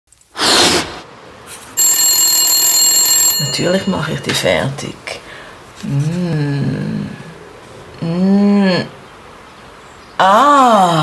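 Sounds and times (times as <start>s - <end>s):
steady ringing tone: 1.8s - 4.8s.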